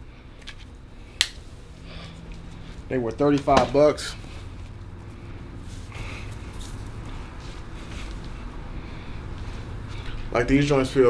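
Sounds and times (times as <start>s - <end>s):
man speaking: 2.9s - 4.2s.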